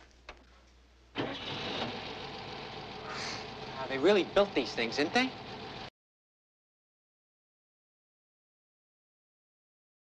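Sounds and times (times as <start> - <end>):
car engine starting and running: 1.2 - 5.9.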